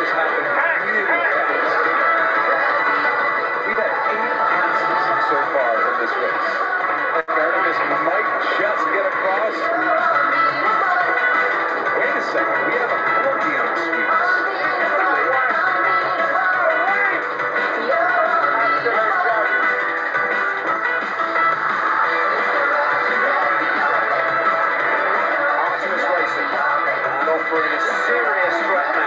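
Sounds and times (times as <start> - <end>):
commentator speaking: 0.0 - 19.6, 22.2 - 29.0
music: 0.0 - 29.0.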